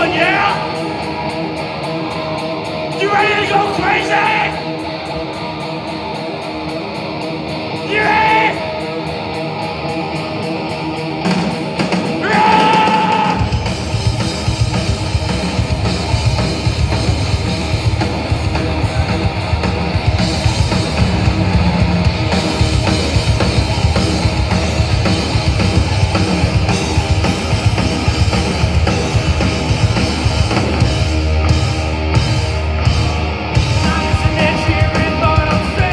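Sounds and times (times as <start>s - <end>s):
loud punk rock band: 0.0s - 35.9s.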